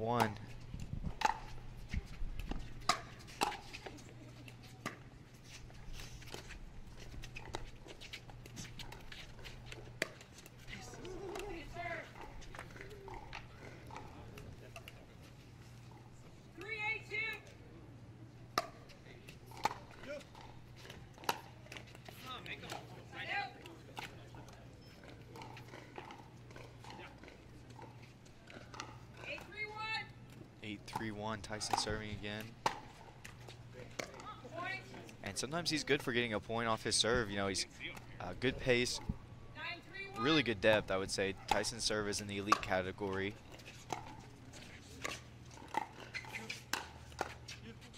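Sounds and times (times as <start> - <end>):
pickleball paddle knocks: 42.4 - 42.8.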